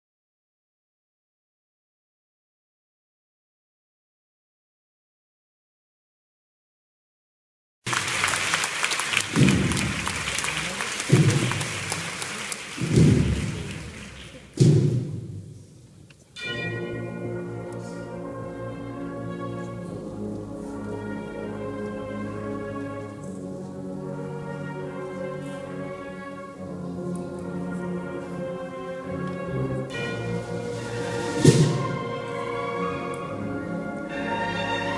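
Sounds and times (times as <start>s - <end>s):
audience applauding: 7.9s - 14.6s
bugle and drum band march: 9.2s - 15.4s, 27.6s - 34.9s
deep drum strokes ringing: 11.0s - 11.9s, 12.8s - 15.6s.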